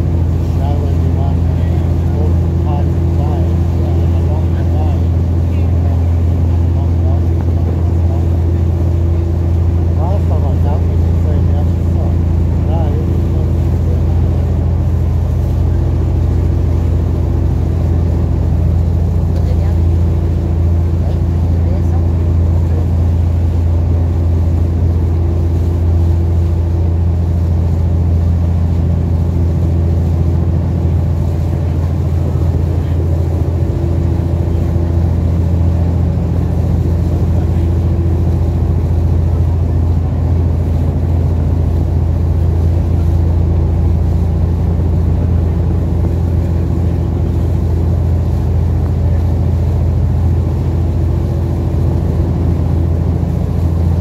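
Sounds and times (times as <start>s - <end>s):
motorboat engine droning: 0.0s - 54.0s.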